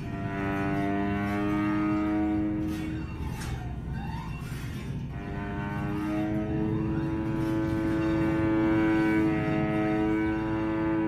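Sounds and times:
held pitched string tones: 0.0s - 11.0s.

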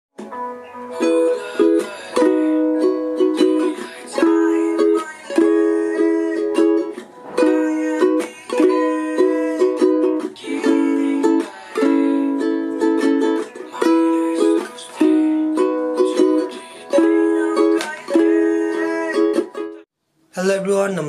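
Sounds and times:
ukulele strumming: 0.2s - 19.8s.

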